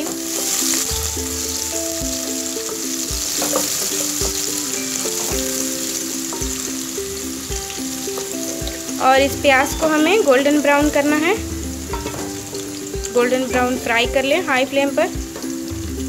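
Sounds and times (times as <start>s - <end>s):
background music with steady beat: 0.0s - 16.0s
onions sizzling in hot oil: 0.0s - 16.0s
wooden spatula stirring: 0.1s - 13.2s.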